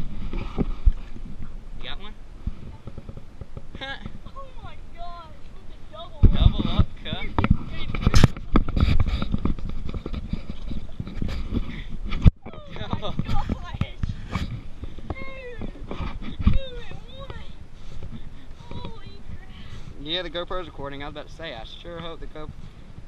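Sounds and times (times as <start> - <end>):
camera handling knocks and rubbing: 2.5 - 4.2, 6.2 - 19.5
indistinct talking: 15.0 - 20.3.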